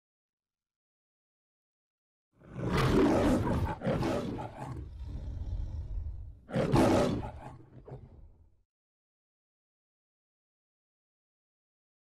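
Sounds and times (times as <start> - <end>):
lion roaring: 2.4 - 8.5.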